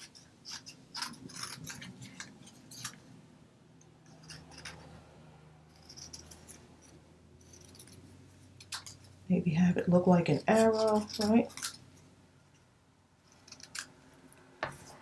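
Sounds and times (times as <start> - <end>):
scissors snipping paper: 10.3 - 11.8.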